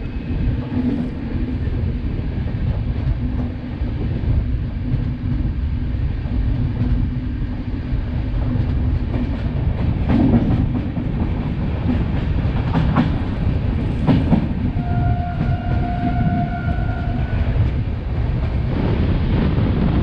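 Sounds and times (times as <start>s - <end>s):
train rumble: 0.0s - 20.0s.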